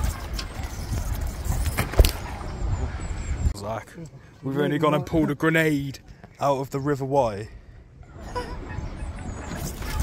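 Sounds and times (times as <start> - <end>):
wind rumbling on microphone: 0.0 - 3.6.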